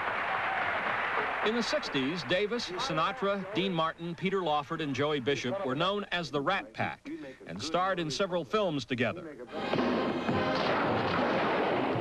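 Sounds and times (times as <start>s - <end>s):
music soundtrack: 9.5s - 12.0s
rapid pistol gunfire: 10.4s - 12.0s.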